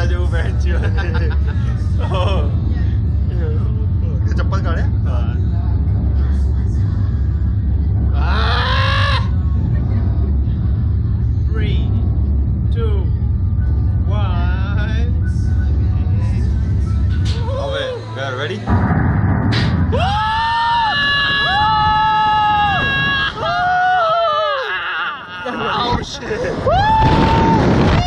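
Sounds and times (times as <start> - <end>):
music: 0.0 - 20.2
ride machinery rumbling: 0.0 - 24.4.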